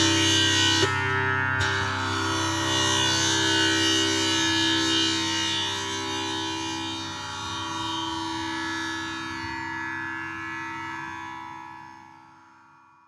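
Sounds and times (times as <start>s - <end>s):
tanpura drone: 0.0s - 13.0s.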